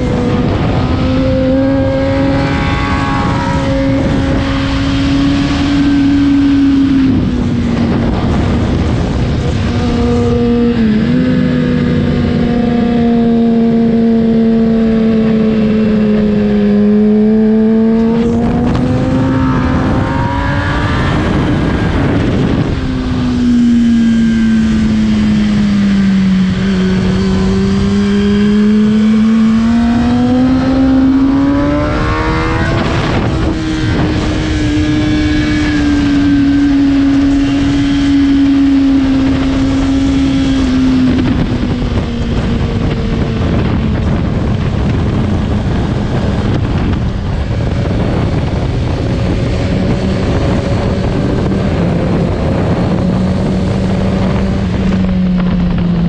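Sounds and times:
motorcycle engine revving: 0:00.0 - 0:56.0
wind and road noise: 0:00.0 - 0:56.0.

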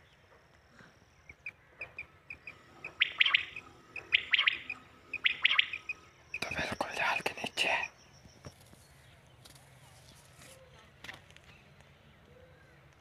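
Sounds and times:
faint regular chirping: 0:00.0 - 0:10.1
quail calling: 0:01.3 - 0:06.7.

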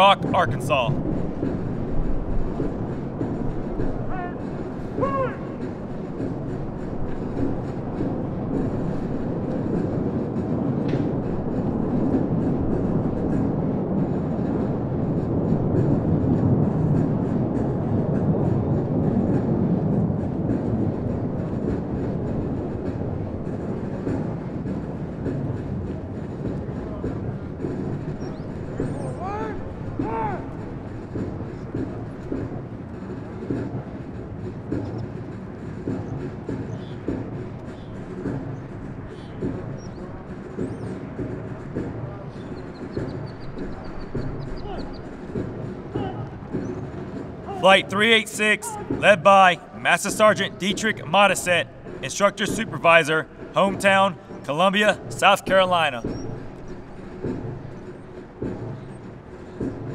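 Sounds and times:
short calls: 0:47.5 - 0:56.0.

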